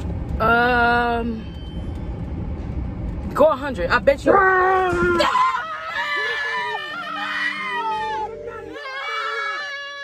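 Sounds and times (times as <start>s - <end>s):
women screaming: 4.4s - 10.0s.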